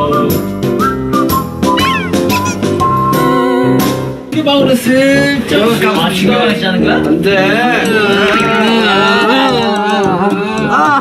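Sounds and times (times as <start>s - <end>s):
background music: 0.0s - 11.0s
cat meowing: 1.8s - 2.9s.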